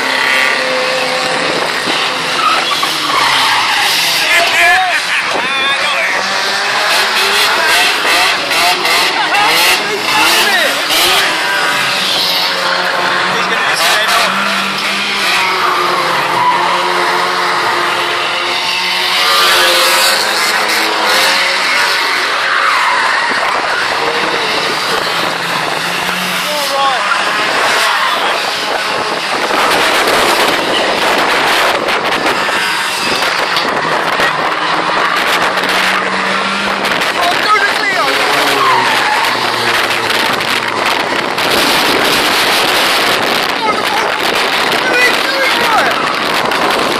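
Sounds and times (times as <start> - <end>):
race car engines revving: 0.0 - 46.9
tyre squeal: 2.1 - 5.3, 14.0 - 17.8, 37.4 - 40.1.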